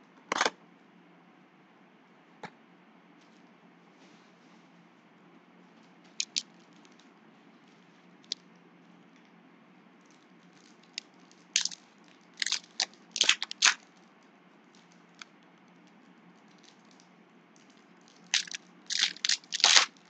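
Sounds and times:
foil wrapper crinkling and tearing: 6.1s - 7.0s, 10.1s - 14.1s, 17.6s - 20.0s.

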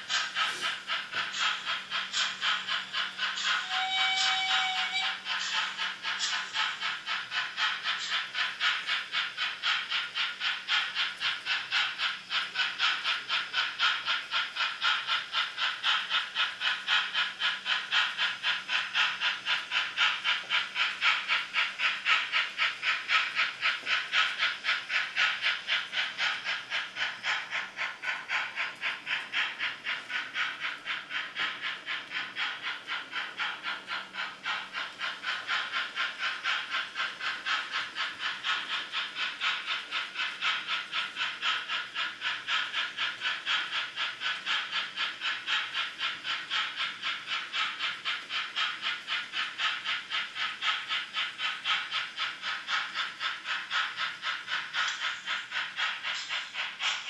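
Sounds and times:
rhythmic steam chuff from speaker: 0.0s - 57.0s.

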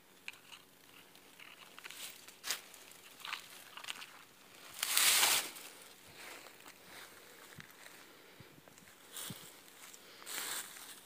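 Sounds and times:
dry leaves crackling and rustling: 1.1s - 8.0s, 8.9s - 11.0s.

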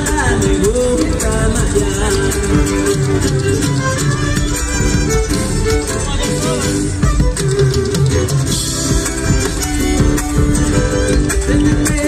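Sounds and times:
live folk band through pa: 0.0s - 12.0s.

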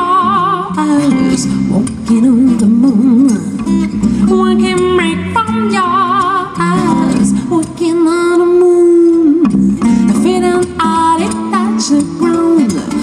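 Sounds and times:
acoustic bass guitar: 0.0s - 13.0s
plucked acoustic guitar: 0.0s - 13.0s
woman singing with vibrato: 0.0s - 13.0s.

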